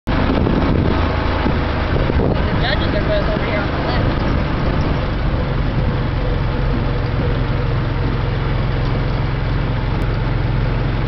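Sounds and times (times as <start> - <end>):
utility vehicle engine driving: 0.1 - 11.0.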